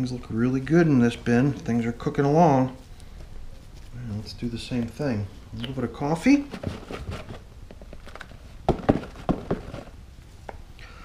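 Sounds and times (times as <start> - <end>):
coffee grounds rustling: 0.0 - 10.6
carton knocking: 6.5 - 7.4, 8.6 - 10.0.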